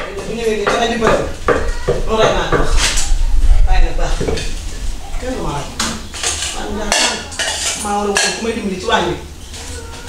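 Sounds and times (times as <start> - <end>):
bowls and metal basins clattering: 4.0 - 9.8.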